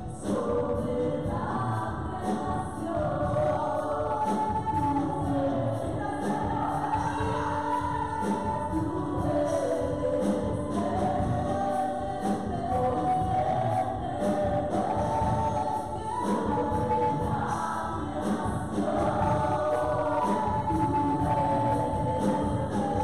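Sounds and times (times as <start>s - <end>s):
drum kit beat: 0.0s - 23.0s
live band: 0.0s - 23.0s
women singing gospel song: 0.0s - 23.0s.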